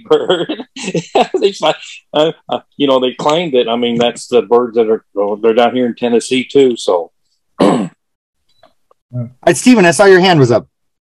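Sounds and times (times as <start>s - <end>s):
person clearing throat: 7.6s - 8.0s.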